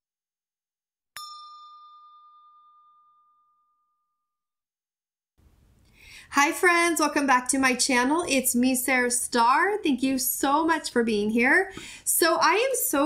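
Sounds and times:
bell-like ding: 1.2s - 4.4s.

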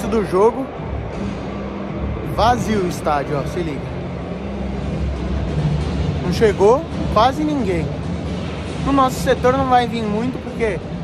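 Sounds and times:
faint music over loudspeakers: 0.0s - 11.0s
stadium low rumble: 0.0s - 11.0s.

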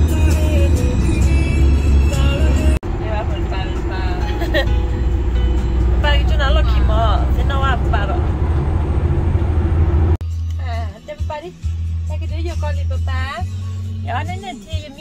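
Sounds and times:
road and engine rumble: 0.0s - 15.0s
music with wavering voice: 10.2s - 15.0s.

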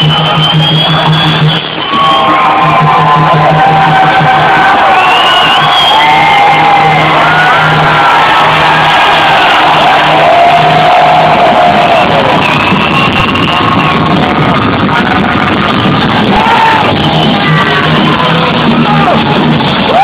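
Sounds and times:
crowd cheering: 0.0s - 20.0s
live hard rock band: 0.2s - 20.0s.

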